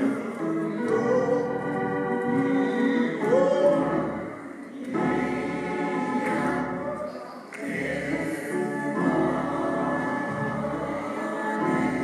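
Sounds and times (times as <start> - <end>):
organ accompaniment: 0.0 - 7.0, 7.7 - 12.0
gospel choir singing: 0.0 - 12.0.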